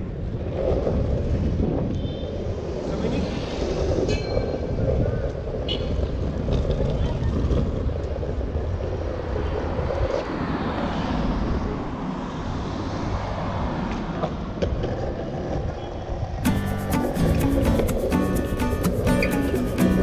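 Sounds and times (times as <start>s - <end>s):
wheels rolling over asphalt: 2.8s - 11.3s, 13.9s - 20.0s
music: 16.4s - 20.0s.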